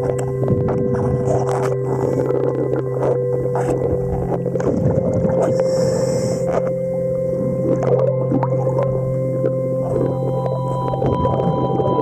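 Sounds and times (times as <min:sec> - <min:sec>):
scraping noises: 0:00.0 - 0:06.8
underwater mechanical hum: 0:00.0 - 0:12.0.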